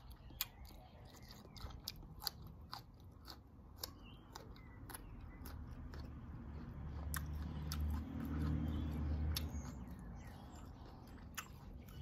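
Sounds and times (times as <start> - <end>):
person chewing food: 0.0 - 12.0.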